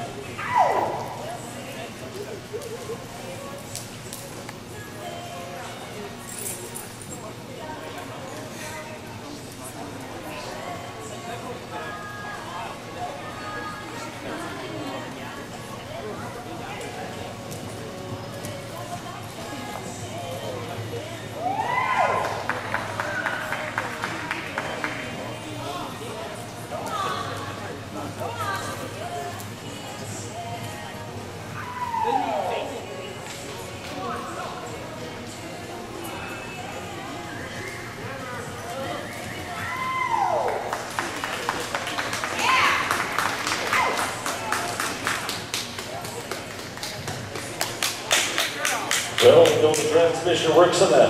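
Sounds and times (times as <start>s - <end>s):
crowd voices: 0.0s - 51.0s
spectator whooping: 21.4s - 22.4s, 31.6s - 32.7s, 39.6s - 40.7s
spectators clapping: 22.0s - 25.2s, 40.3s - 50.2s.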